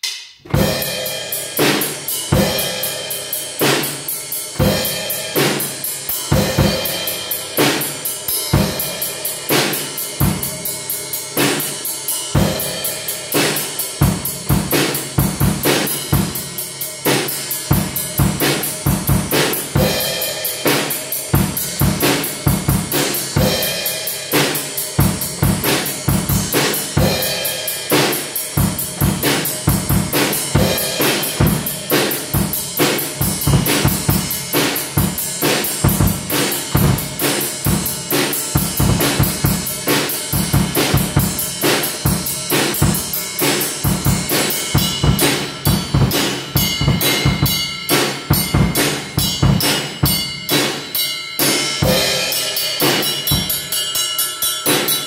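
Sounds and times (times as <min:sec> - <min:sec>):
drum kit beat: 0:00.0 - 0:55.0.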